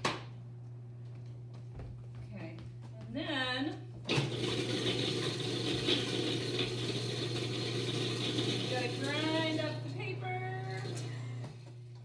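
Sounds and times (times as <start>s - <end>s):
food processor hum: 4.1s - 12.0s.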